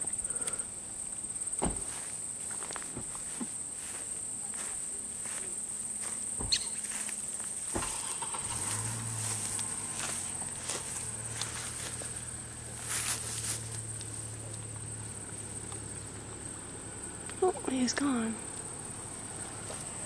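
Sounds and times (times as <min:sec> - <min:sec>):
footsteps on dry ground: 0:01.7 - 0:15.8, 0:19.4 - 0:20.0
high-pitched insect trill: 0:03.6 - 0:19.6.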